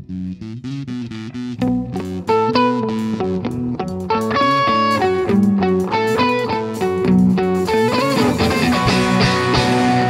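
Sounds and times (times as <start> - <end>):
bass guitar: 0.0 - 10.0
electric guitars picking notes: 0.0 - 10.0
drums: 1.6 - 10.0.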